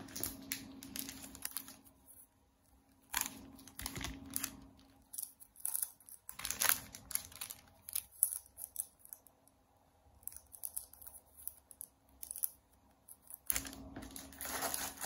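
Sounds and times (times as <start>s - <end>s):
plastic wrap crinkling: 0.0s - 2.2s, 2.9s - 9.2s, 13.4s - 15.0s.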